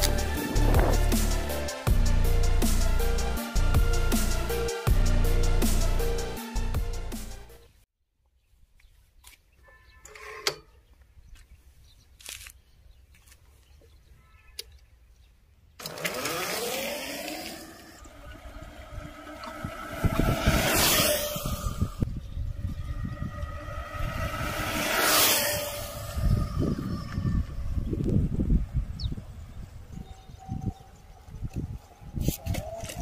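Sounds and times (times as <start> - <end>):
electric motor whining: 15.8 - 28.2
loud whooshes: 17.9 - 28.0
uneven low rumble: 18.0 - 29.0.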